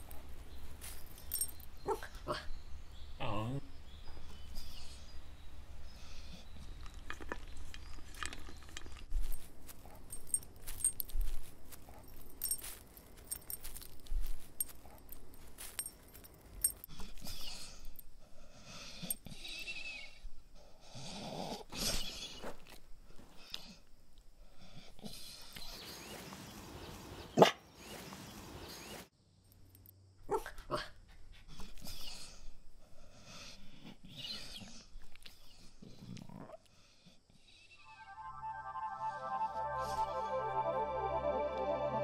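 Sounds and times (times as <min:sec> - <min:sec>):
dog tags jingling: 0:00.8 - 0:02.0, 0:09.1 - 0:18.1
dog barking: 0:27.4 - 0:27.6, 0:30.3 - 0:30.9.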